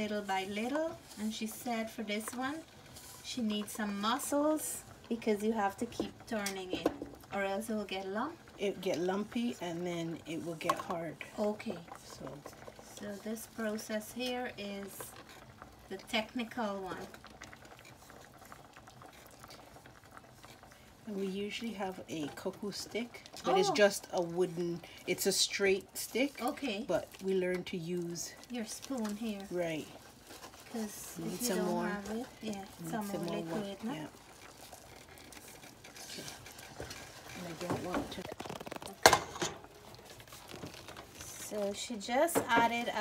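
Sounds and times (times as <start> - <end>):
cornmeal bubbling in a pot: 0.0 - 43.0
wooden spoon stirring: 0.0 - 43.0.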